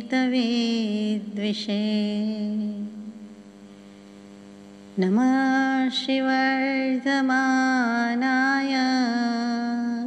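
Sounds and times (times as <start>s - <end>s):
woman chanting a prayer: 0.0s - 3.2s, 5.0s - 10.0s
faint steady hum: 0.0s - 10.0s.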